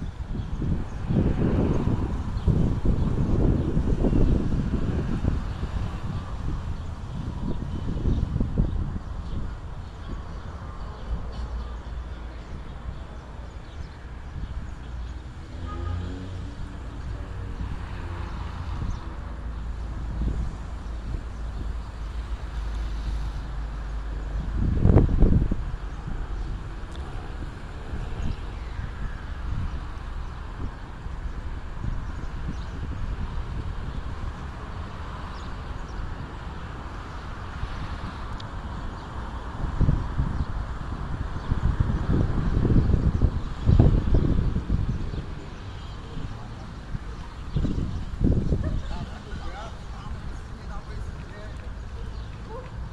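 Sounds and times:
street ambience: 0.0s - 52.9s
wind rumbling on microphone: 0.0s - 52.9s.

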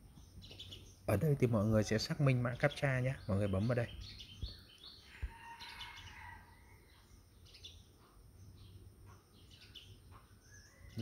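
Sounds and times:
faint bird chirps: 0.0s - 11.0s
background hum: 2.5s - 11.0s.

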